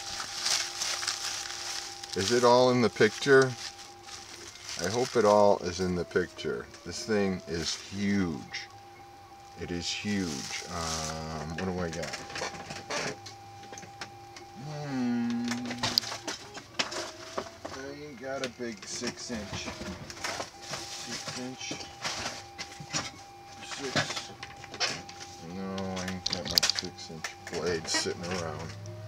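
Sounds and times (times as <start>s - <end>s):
plastic bag rustling: 0.0s - 8.7s, 9.6s - 13.0s, 19.0s - 22.8s
bubble wrap crinkling: 0.0s - 13.2s, 18.6s - 23.2s.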